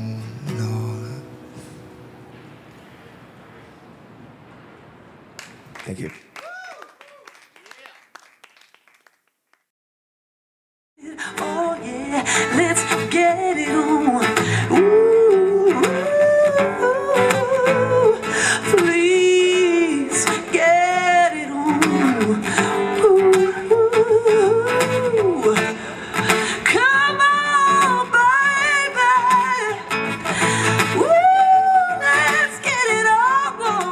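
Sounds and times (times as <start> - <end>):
person singing long wavering notes: 0.0 - 1.8
acoustic guitar strumming: 0.0 - 3.6, 11.2 - 33.9.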